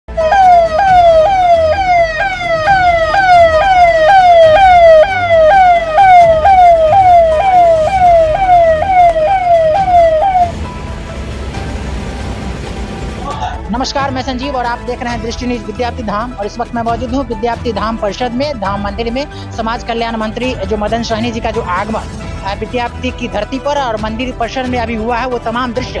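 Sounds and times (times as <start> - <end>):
police siren sweeping: 0.1 - 13.2.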